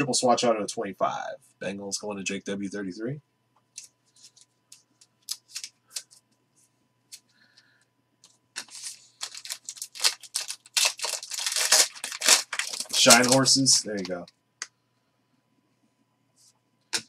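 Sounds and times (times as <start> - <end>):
foil card pack crinkling: 5.2 - 6.2, 8.6 - 14.3
trading cards clicking: 10.8 - 14.2.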